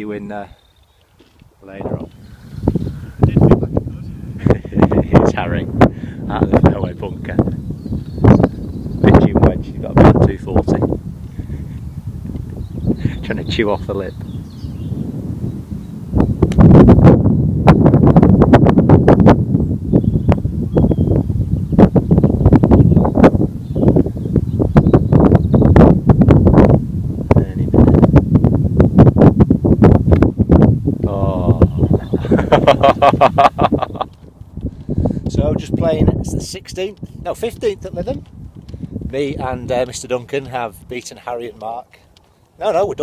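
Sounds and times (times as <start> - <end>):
wind buffeting microphone: 0.0 - 43.0
man laughing: 4.4 - 5.2, 31.1 - 34.2.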